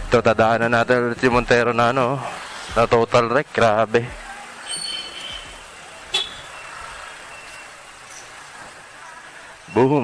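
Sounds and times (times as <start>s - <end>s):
street traffic noise: 0.0s - 10.0s
faint distant voices: 3.9s - 10.0s
motorcycle moving slowly: 4.2s - 10.0s.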